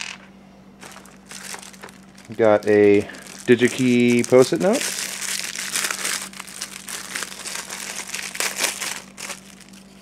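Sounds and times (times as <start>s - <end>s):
plastic bag crinkling: 0.8s - 10.0s.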